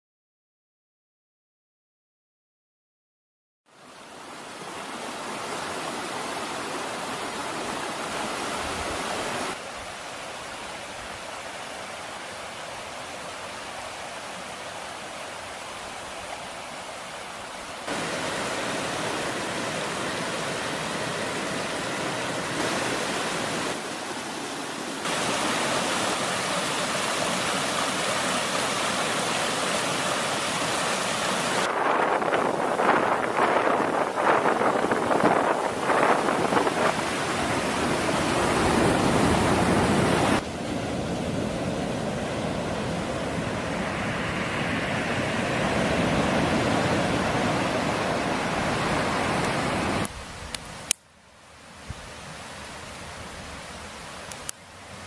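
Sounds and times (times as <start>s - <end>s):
creek water running over rocks: 3.8s - 40.6s, 46.0s - 55.0s.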